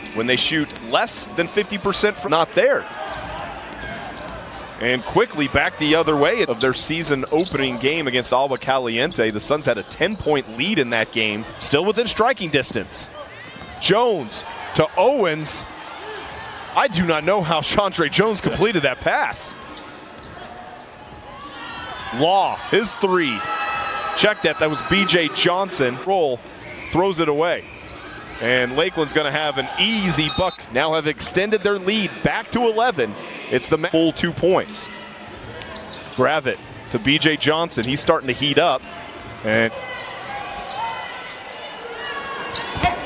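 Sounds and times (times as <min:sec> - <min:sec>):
murmur of crowd voices: 0:00.0 - 0:43.0
crowd murmur: 0:37.8 - 0:43.0.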